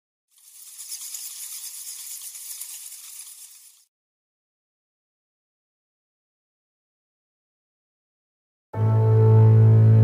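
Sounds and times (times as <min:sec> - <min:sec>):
high fizzing hiss: 0:00.4 - 0:03.9.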